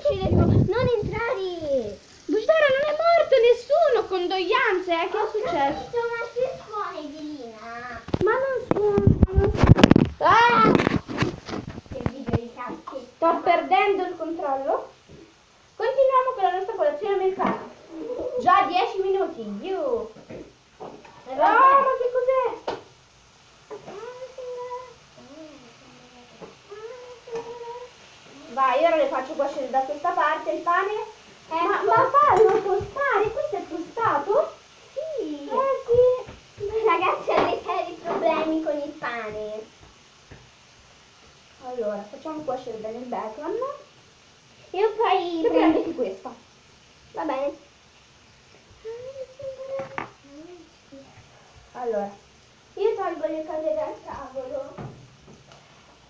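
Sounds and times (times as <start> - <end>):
girl speaking: 0.0 - 9.6, 10.2 - 10.9, 11.9 - 14.4, 15.8 - 19.8, 23.8 - 29.2, 34.9 - 39.8, 48.8 - 51.1
girl humming: 17.9 - 18.4, 25.2 - 28.5.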